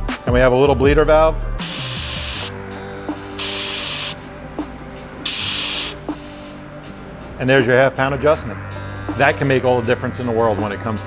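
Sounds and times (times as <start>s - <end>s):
air hissing from a tire: 1.6s - 2.6s, 3.4s - 4.3s, 5.2s - 6.0s.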